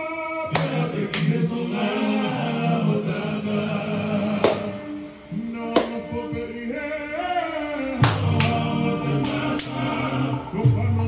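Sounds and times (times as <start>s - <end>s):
choir singing held notes: 0.4s - 11.0s.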